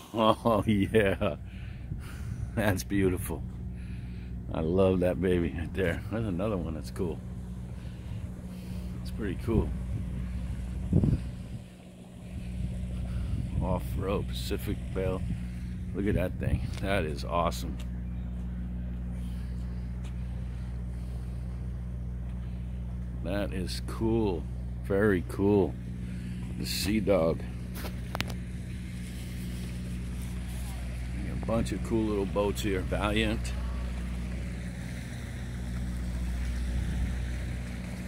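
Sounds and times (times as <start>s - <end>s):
engine humming: 0.0s - 38.0s.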